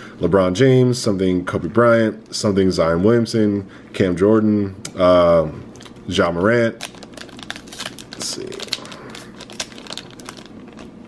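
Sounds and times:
foil wrapper crinkling and tearing: 6.7s - 11.0s.

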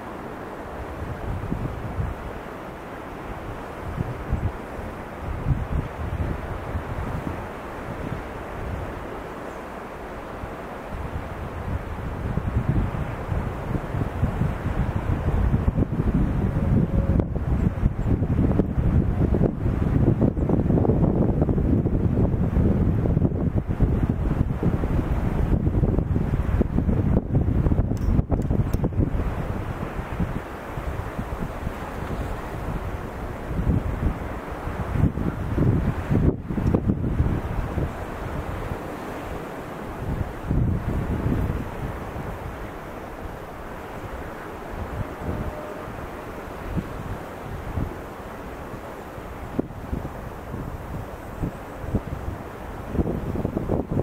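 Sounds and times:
wind buffeting microphone: 0.0s - 9.3s, 10.3s - 54.0s.

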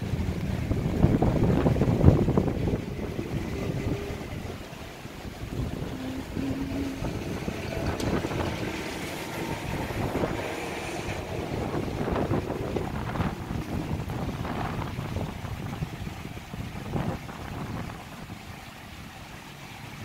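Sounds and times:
faint outdoor background sound: 0.0s - 20.0s
wind buffeting microphone: 0.0s - 20.0s.

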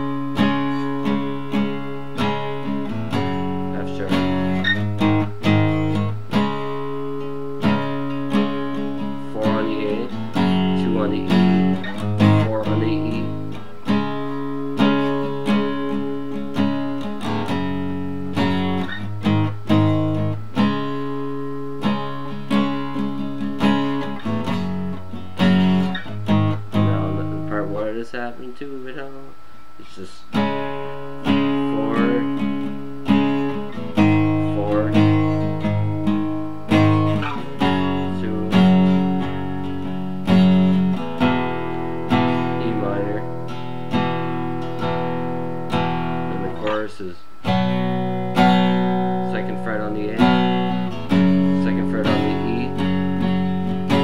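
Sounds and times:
acoustic guitar strummed chords: 0.0s - 54.0s.

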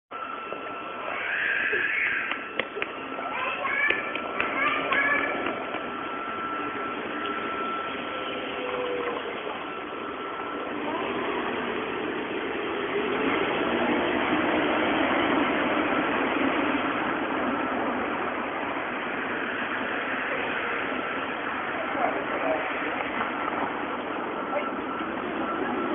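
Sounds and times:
rushing street noise: 0.1s - 25.9s.

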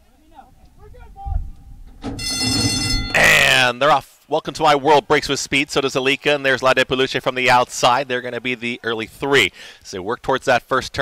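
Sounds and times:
low thump: 1.3s - 3.1s
starting-gate bell ringing: 2.1s - 3.6s.

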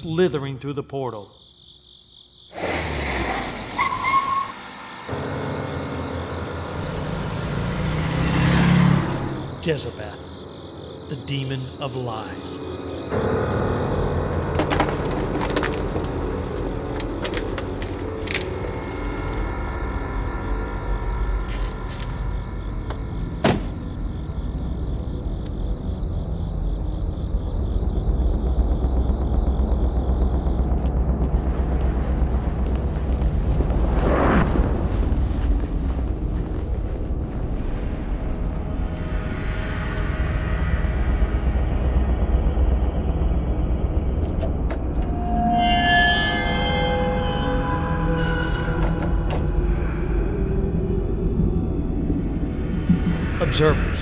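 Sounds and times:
vehicle door slamming: 23.4s - 23.8s
steady low rumble: 26.0s - 45.2s, 49.5s - 54.0s.

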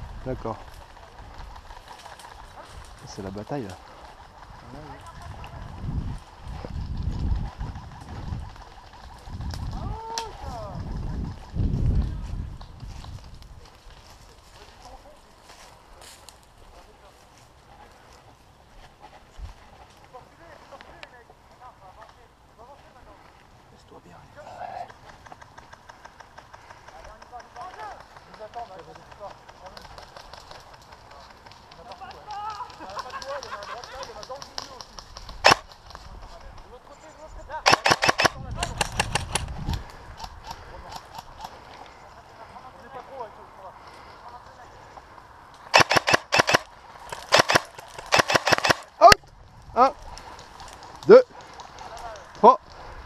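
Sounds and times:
airsoft guns firing: 35.4s - 35.7s, 37.7s - 39.5s, 45.7s - 48.9s.

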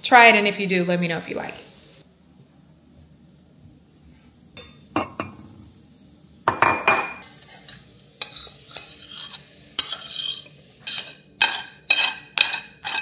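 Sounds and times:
utensil scraping ceramic bowl: 8.2s - 13.0s.

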